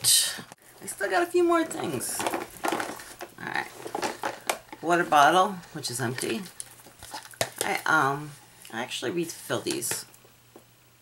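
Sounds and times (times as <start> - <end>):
plastic items rustling: 0.6 - 8.4.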